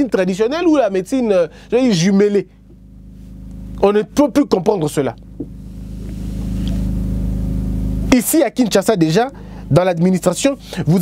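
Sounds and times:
low engine drone: 0.0s - 11.0s.

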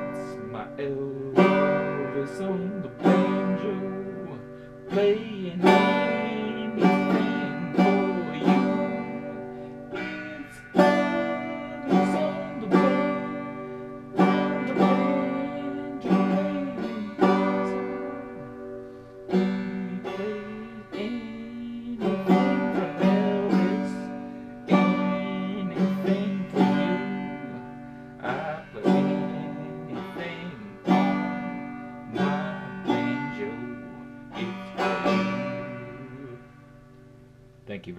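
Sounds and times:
banjo strumming chords: 0.0s - 37.9s.

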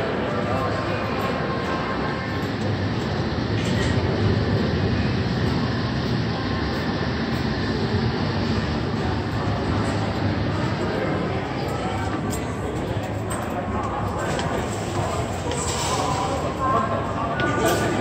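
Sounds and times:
underground train rumble: 0.0s - 18.0s.

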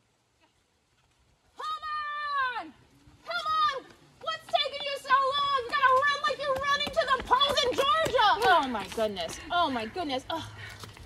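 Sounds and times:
excited shouting: 1.6s - 8.8s.

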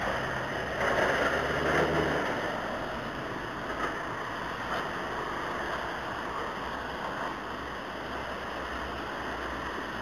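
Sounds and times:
tyre hiss on wet road: 0.0s - 10.0s
vehicle engine rumble: 0.0s - 10.0s.

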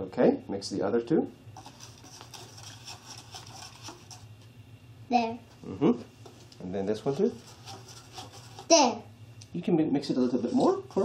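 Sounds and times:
low steady hum: 0.0s - 11.0s
brush handle stirring in foam cup: 1.6s - 4.3s, 7.0s - 8.8s.

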